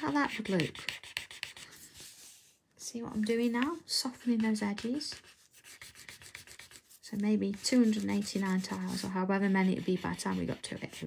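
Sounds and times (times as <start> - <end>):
pencil rubbing on paper: 0.0 - 2.6, 3.2 - 11.0.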